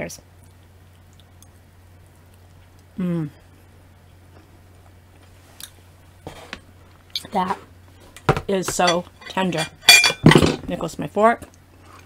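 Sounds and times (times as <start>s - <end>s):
low steady hum: 0.0s - 12.0s
faint chewing: 0.4s - 1.6s.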